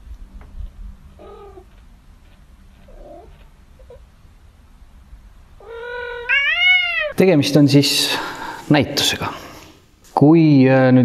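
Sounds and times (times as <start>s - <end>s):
cat meowing and yowling: 1.2s - 1.6s, 5.6s - 7.2s.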